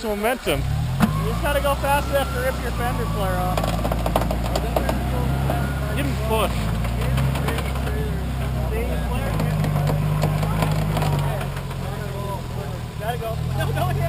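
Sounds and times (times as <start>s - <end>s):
car engine running: 0.5s - 14.0s.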